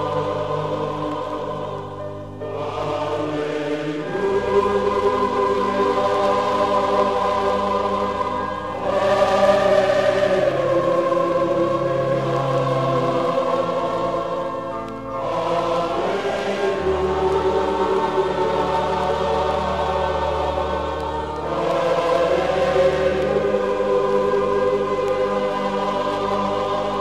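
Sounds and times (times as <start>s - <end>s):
choir singing sustained chords: 0.0s - 27.0s
low instrumental accompaniment: 0.0s - 27.0s.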